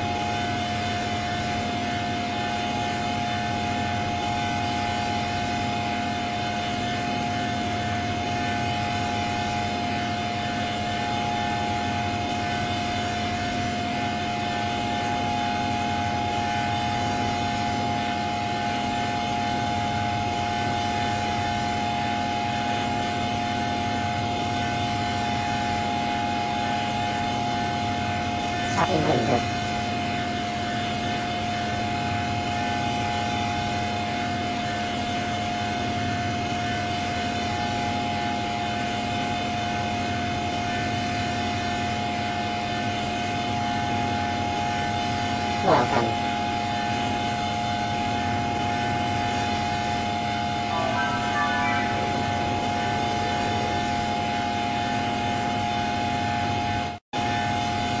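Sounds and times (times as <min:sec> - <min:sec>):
dense electronic drone: 0:49.5 - 0:56.7.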